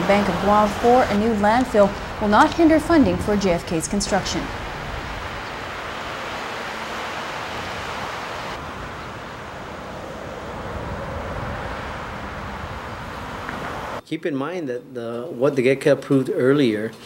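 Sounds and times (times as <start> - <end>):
road traffic: 0.0 - 14.0
wind on microphone: 0.0 - 14.0.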